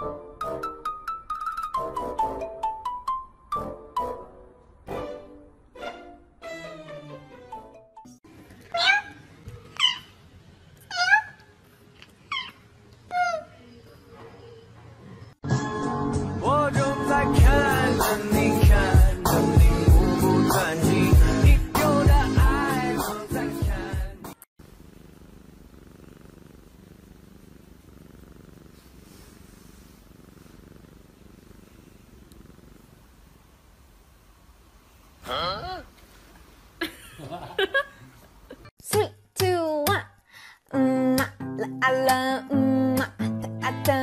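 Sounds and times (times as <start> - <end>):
cat meowing: 8.7 - 10.2, 10.9 - 11.4
cat purring: 24.6 - 34.2.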